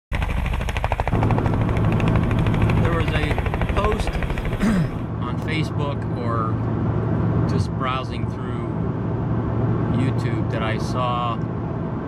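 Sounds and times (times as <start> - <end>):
helicopter rotor: 0.1 - 12.0.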